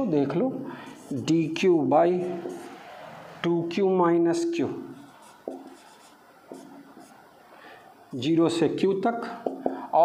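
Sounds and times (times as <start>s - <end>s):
person speaking: 0.0s - 2.8s
marker writing on whiteboard: 0.8s - 3.3s, 4.7s - 7.6s, 9.3s - 9.9s.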